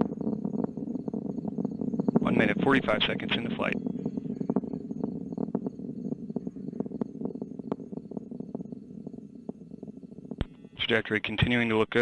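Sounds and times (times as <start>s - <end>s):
distant rocket engine rumble: 0.0s - 11.9s
crackling pops: 0.0s - 12.0s.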